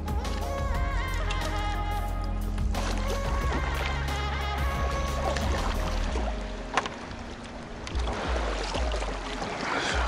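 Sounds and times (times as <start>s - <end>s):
water lapping around kayak: 0.0s - 10.0s.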